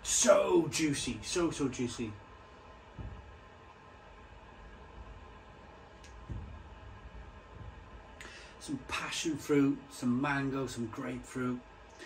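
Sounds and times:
faint steady hum: 0.0 - 12.0
soft low thump: 2.4 - 8.3.

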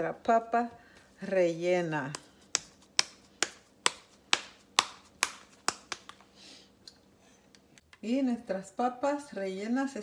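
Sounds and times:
hands slapping mashed potato: 1.3 - 6.4.

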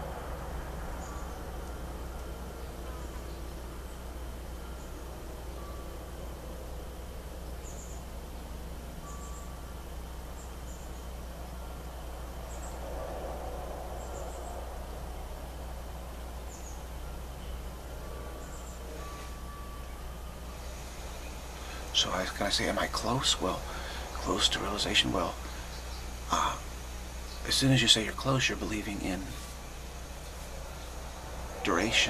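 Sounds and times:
steady low hum: 0.0 - 32.0
faint bird chirps: 0.9 - 32.0.

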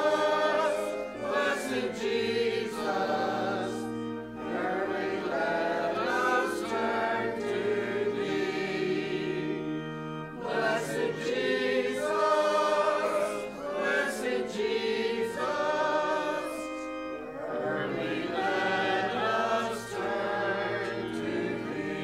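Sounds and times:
church choir singing: 0.0 - 22.0
organ accompaniment: 0.0 - 22.0.

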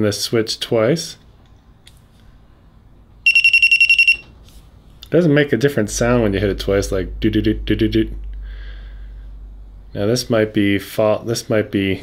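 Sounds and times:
rapid high-pitched beeps: 3.2 - 4.3.

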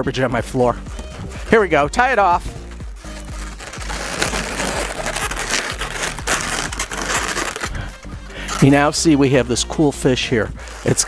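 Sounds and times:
balloons rubbing and scraping: 0.6 - 11.0.

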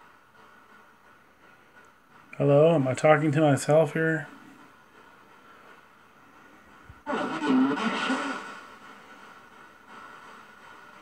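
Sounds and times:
garbled unclear voice: 7.1 - 8.4.

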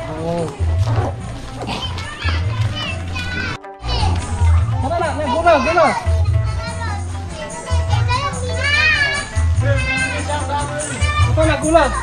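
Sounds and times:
background music with bass: 0.0 - 12.0
children calling and chattering: 0.0 - 12.0.

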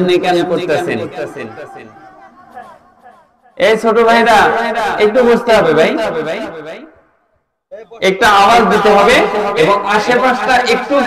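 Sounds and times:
background voices talking: 0.0 - 3.3
man speaking into a microphone: 0.0 - 6.8, 7.7 - 11.0.

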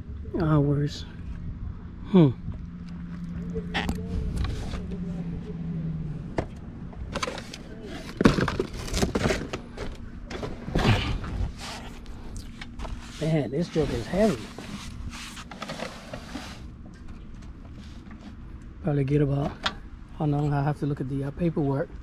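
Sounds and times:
steady low hum: 0.0 - 22.0
cardboard and plastic rustling: 7.1 - 16.8.

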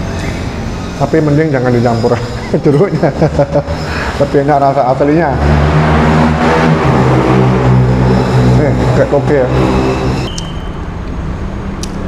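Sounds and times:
vehicle engine running low: 0.0 - 11.9.

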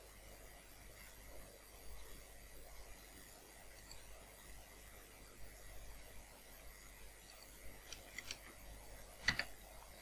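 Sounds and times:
mouse and keyboard clicks: 7.3 - 8.6, 9.2 - 9.6.

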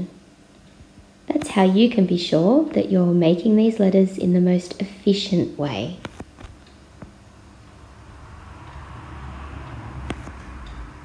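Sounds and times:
vehicle rumble and hiss: 7.0 - 11.0.

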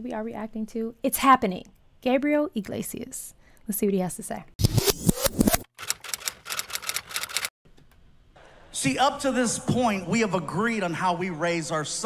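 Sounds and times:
typewriter key clacks: 5.8 - 7.5.

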